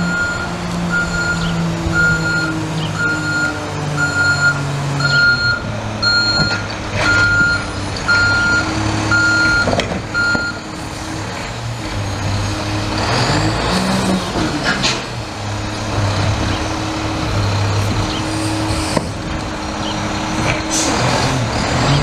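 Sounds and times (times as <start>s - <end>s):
reversing alarm beeping: 0.0s - 10.8s
diesel engine idling: 0.0s - 21.6s
engine revving up: 0.0s - 22.0s
hydraulic arm dumping cart: 0.0s - 22.0s.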